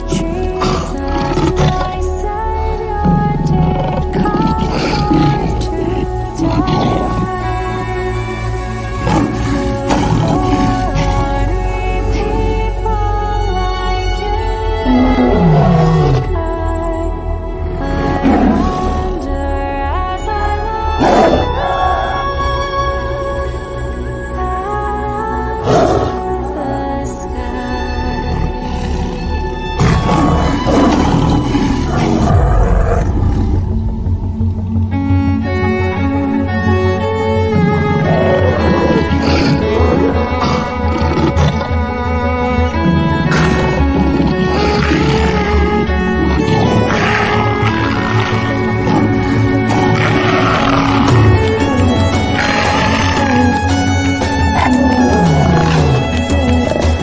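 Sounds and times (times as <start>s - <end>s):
lion roaring and growling: 0.0s - 12.8s, 14.7s - 16.3s, 21.0s - 22.6s, 28.3s - 57.0s
music with held tones: 0.0s - 57.0s.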